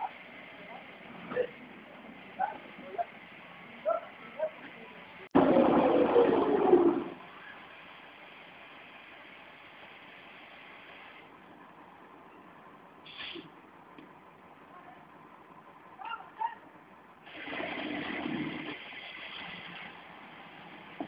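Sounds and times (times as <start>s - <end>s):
low background noise: 0.0s - 21.0s.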